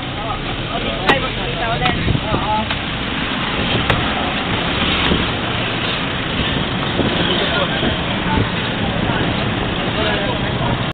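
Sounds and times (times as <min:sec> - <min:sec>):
traffic noise: 0:00.0 - 0:10.9.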